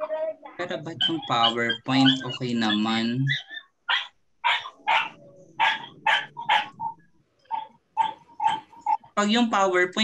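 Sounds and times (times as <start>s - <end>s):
dog barking: 0.9s - 9.2s.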